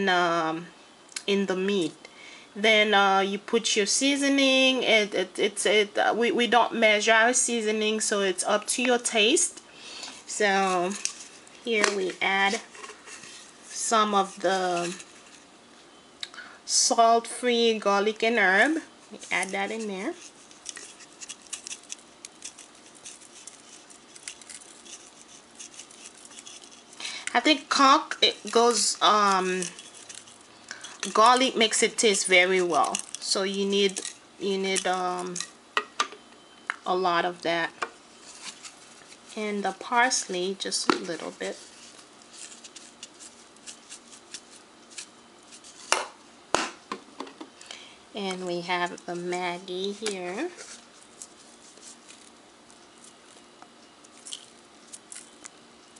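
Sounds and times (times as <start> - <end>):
seasoning shaker ticks: 18.1 - 35.6, 42.2 - 45.7.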